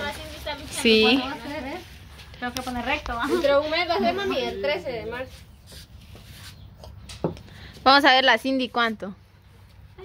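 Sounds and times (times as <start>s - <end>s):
woman speaking: 0.0s - 5.3s, 7.8s - 9.2s.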